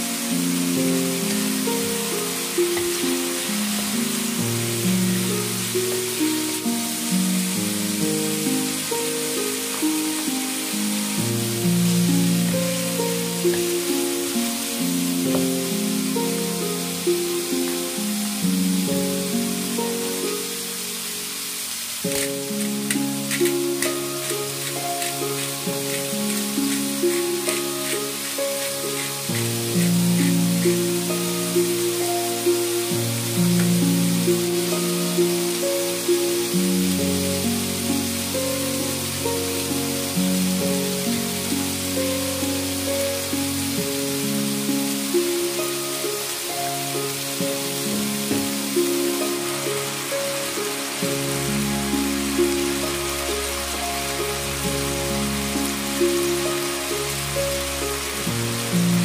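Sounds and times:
background music held chords: 0:00.0 - 0:59.0
food sizzling in a wok: 0:00.0 - 0:59.0.

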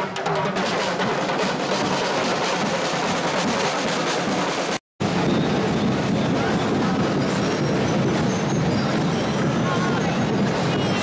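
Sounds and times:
drum group drumming: 0:00.0 - 0:04.8
crowd noise: 0:00.0 - 0:11.0.

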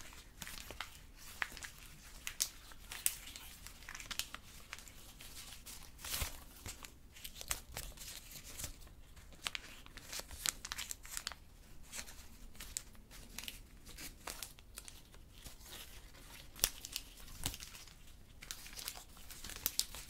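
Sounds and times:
candy wrapper crinkling and tearing: 0:00.0 - 0:20.0.

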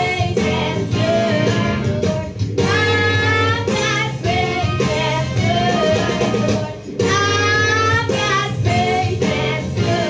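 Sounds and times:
girl singing gospel song: 0:00.0 - 0:10.0
instrumental backing: 0:00.0 - 0:10.0.

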